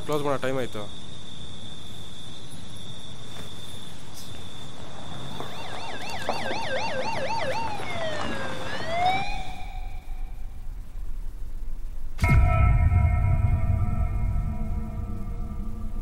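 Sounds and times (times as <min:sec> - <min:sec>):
police siren yelp and wail: 0:05.3 - 0:10.4.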